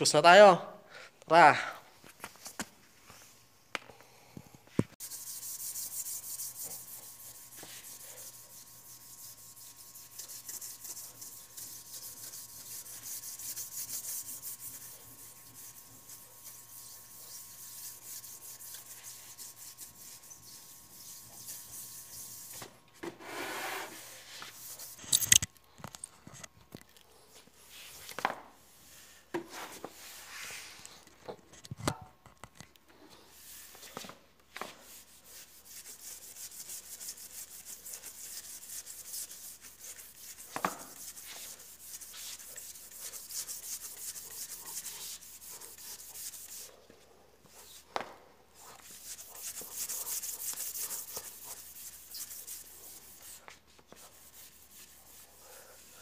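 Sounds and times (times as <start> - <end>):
scrub brush scrubbing floor: 5.0 - 24.9, 33.4 - 46.8, 48.6 - 56.0.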